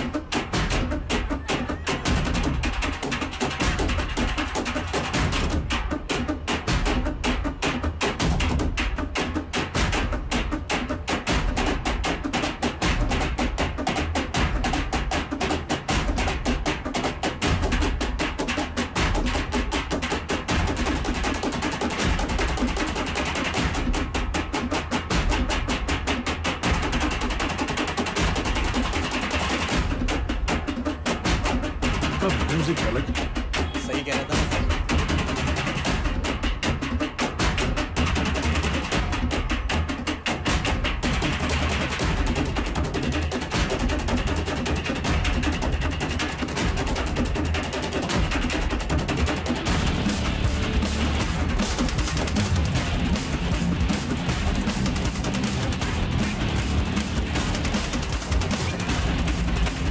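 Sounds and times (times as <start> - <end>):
drumming on metal oil drums: 0.0 - 59.9.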